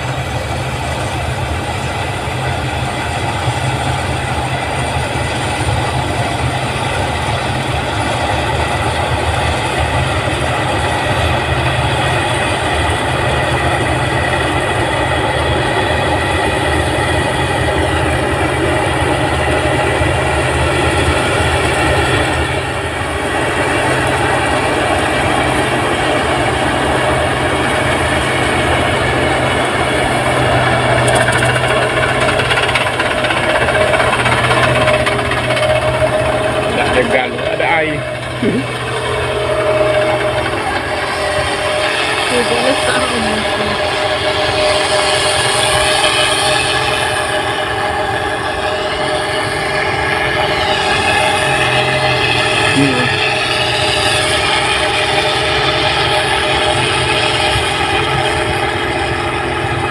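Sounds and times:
combine harvester running: 0:00.0 - 0:59.9.

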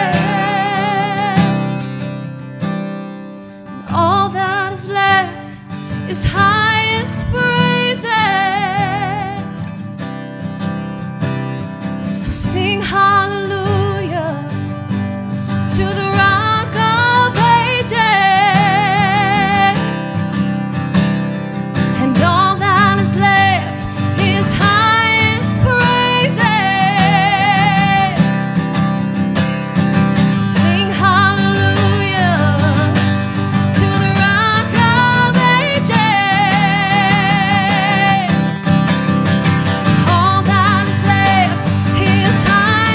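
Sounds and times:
woman singing with vibrato: 0:00.0 - 0:01.7, 0:03.8 - 0:09.7, 0:12.2 - 0:14.6, 0:15.6 - 0:20.2, 0:22.0 - 0:28.6, 0:30.2 - 0:38.7, 0:39.9 - 0:42.9
strummed acoustic guitar: 0:00.0 - 0:42.9.

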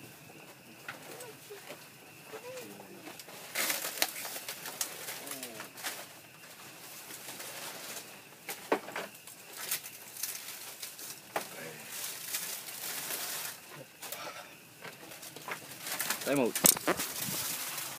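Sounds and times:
dove cooing: 0:00.0 - 0:03.2
steady hiss: 0:00.0 - 0:17.9
sharp clicks and knocks: 0:16.3 - 0:17.1.

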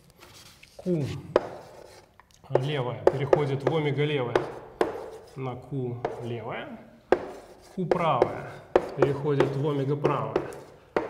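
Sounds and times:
chalk striking chalkboard: 0:00.4 - 0:05.4, 0:06.0 - 0:06.4, 0:07.1 - 0:11.0
man saying a syllable: 0:00.8 - 0:01.3
cloth rubbing a board: 0:07.2 - 0:09.5.

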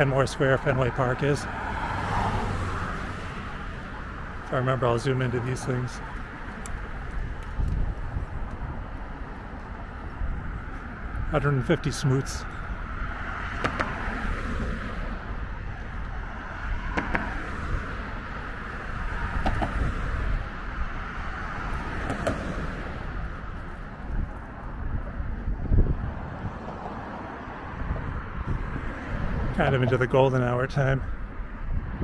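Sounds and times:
road traffic hum: 0:00.0 - 0:32.0.

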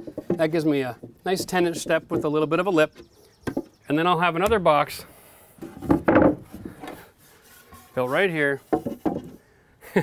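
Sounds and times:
wooden block scraping and knocking: 0:00.0 - 0:04.7, 0:05.6 - 0:09.4.

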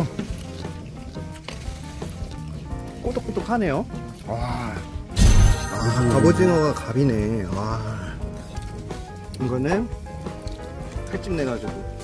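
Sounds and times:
man chewing crunchy food: 0:00.0 - 0:05.1, 0:10.0 - 0:11.1
background music: 0:00.0 - 0:12.0.

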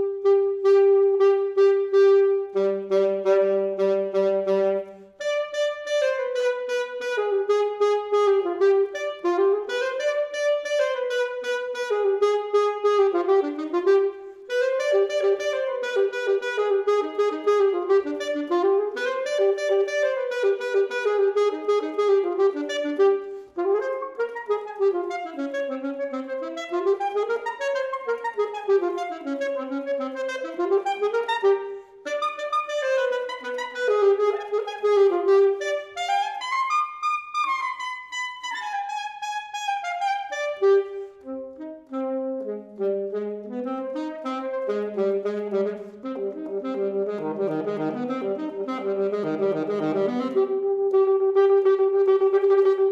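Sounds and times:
alto saxophone playing: 0:00.0 - 0:52.9.

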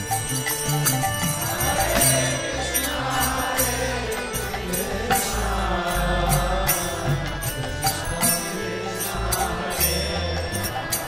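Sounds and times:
metallic percussion strikes: 0:00.0 - 0:11.0
voices chanting: 0:01.3 - 0:11.0.

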